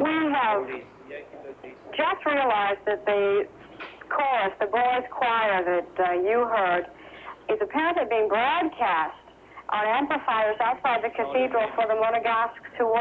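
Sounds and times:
person talking: 9.7s - 13.0s.

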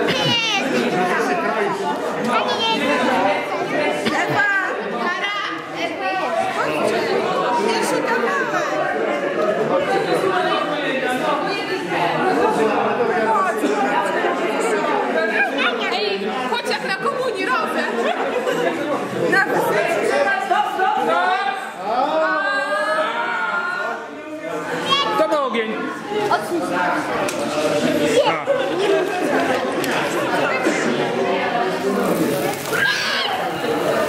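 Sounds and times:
crowd chatter: 0.0s - 34.0s.

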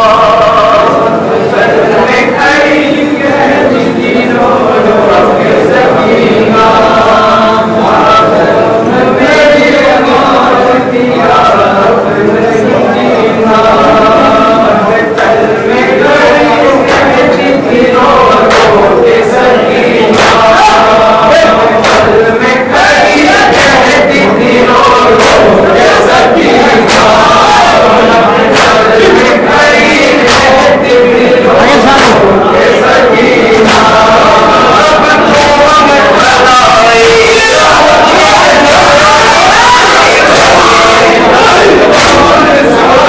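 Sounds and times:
men chanting a lament: 0.0s - 43.0s
hands slapping chests: 30.2s - 30.6s, 41.9s - 42.4s.

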